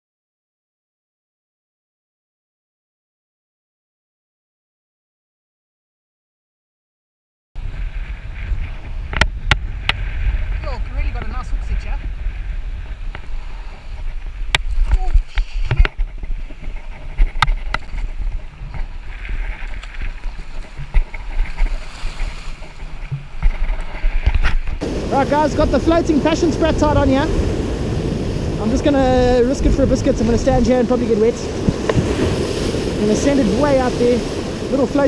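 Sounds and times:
surf washing over rocks: 7.6 - 35.0
wind buffeting microphone: 7.6 - 35.0.

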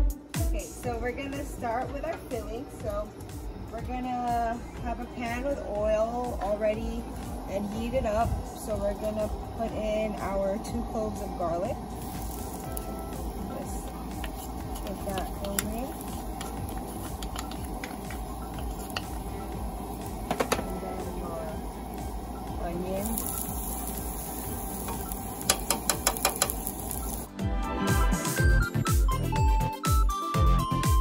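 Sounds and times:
light background music: 0.0 - 31.0
garlic sizzling in oil: 2.8 - 27.3.

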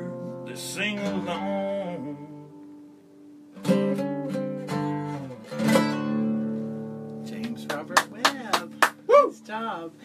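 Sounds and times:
acoustic guitar strumming: 0.0 - 9.8.

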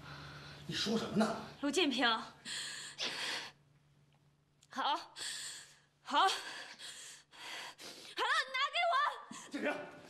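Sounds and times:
faint steady hum: 0.0 - 9.4
woman breathing hard: 2.4 - 3.6, 5.2 - 8.2.

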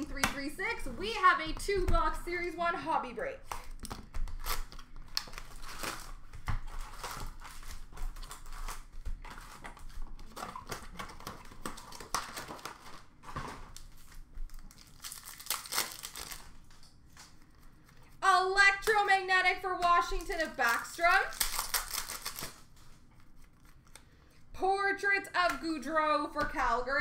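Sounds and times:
wrappers crinkling and rustling: 3.3 - 18.2, 18.8 - 24.5
wrapper tearing: 3.4 - 17.4, 20.0 - 24.1.

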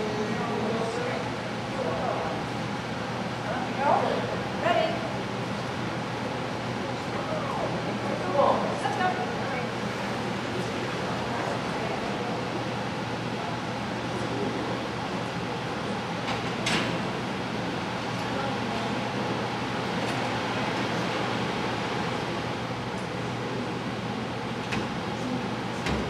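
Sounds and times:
faint murmur of people: 0.0 - 26.0
ventilation hum: 0.0 - 26.0.

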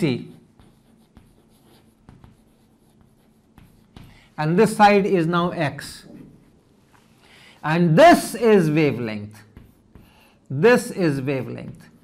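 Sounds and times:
chalk tapping: 0.0 - 4.4, 8.4 - 12.0
chalk scratching on chalkboard: 0.0 - 4.8, 8.3 - 12.0.

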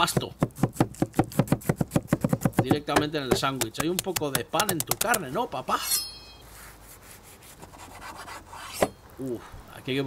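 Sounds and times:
knife sawing through toasted bread: 6.7 - 8.9.

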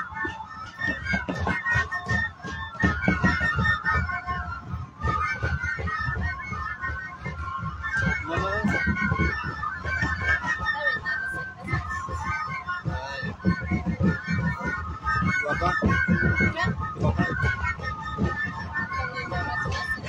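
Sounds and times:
crowd voices: 0.0 - 20.0
flutes playing melody: 0.0 - 20.0.

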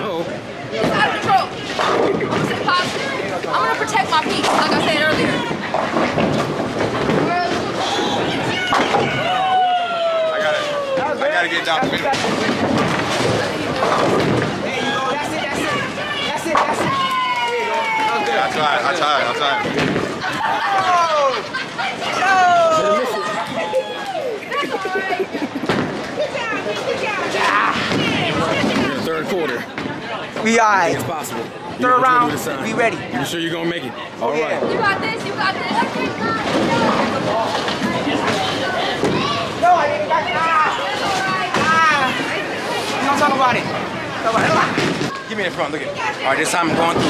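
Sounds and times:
busy bowling alley noise: 0.0 - 47.0.

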